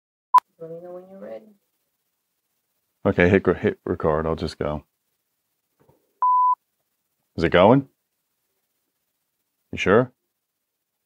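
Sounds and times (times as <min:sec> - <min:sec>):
short electronic beep: 0:06.2 - 0:06.6.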